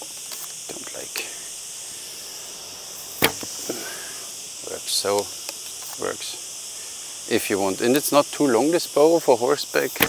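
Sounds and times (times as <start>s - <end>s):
steady high hiss: 0.0s - 10.0s
arrow shot from a bow: 3.2s - 3.5s.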